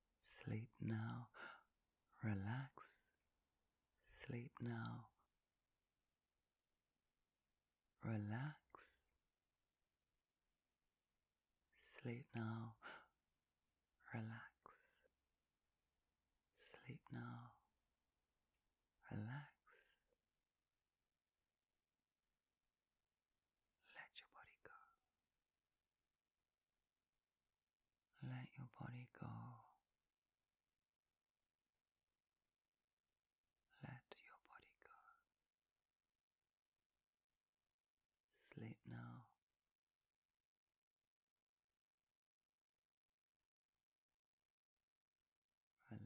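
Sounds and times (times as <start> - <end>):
quiet spoken voice: 0.2 - 3.1, 4.1 - 5.2, 8.0 - 9.1, 11.8 - 13.2, 14.0 - 15.0, 16.6 - 17.7, 19.0 - 20.1, 23.8 - 25.0, 28.2 - 29.8, 33.8 - 35.2, 38.4 - 39.4
woman whispering: 0.2 - 3.2, 4.0 - 5.3, 8.0 - 9.2, 11.7 - 13.2, 14.0 - 15.1, 16.6 - 17.7, 19.0 - 20.2, 23.8 - 25.0, 28.2 - 29.8, 33.7 - 35.3, 38.3 - 39.4, 45.8 - 46.0.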